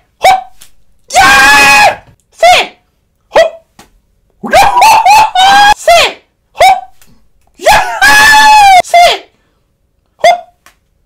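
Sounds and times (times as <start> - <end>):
man squealing and yelping: 0.2 - 2.7, 4.4 - 7.0, 7.6 - 9.3, 10.2 - 10.6.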